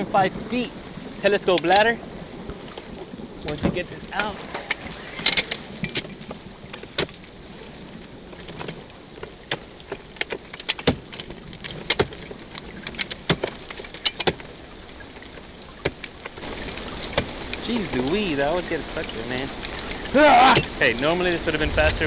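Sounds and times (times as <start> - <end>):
water spray hissing and pattering: 0.0 - 22.0.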